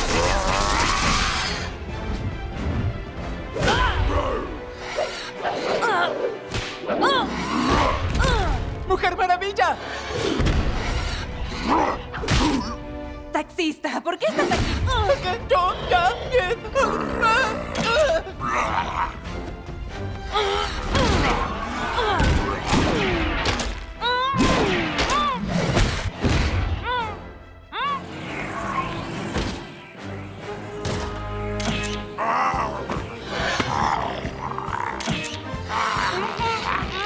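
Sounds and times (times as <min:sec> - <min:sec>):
action music: 0:00.0 - 0:37.0
dramatic orchestral score: 0:00.0 - 0:37.0.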